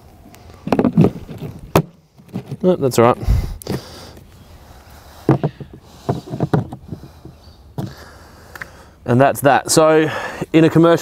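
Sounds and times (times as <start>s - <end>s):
plastic knocks and creaks: 0.6s - 2.7s, 5.3s - 8.0s.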